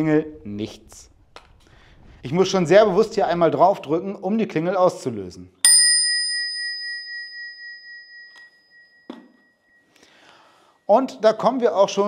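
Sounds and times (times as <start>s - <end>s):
bicycle bell ringing: 5.6s - 9.9s.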